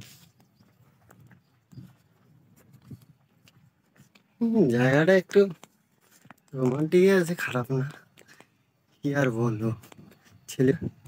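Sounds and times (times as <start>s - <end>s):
footsteps on gravel: 0.0s - 10.5s.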